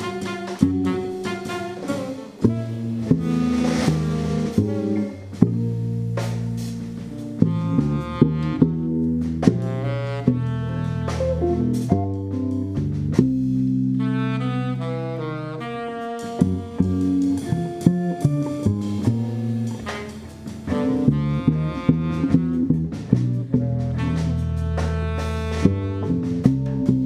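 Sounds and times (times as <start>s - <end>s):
tenor saxophone: 0.0s - 6.2s, 7.0s - 12.4s, 13.8s - 26.9s
double bass: 0.0s - 27.0s
drum kit with cymbals: 0.0s - 27.0s.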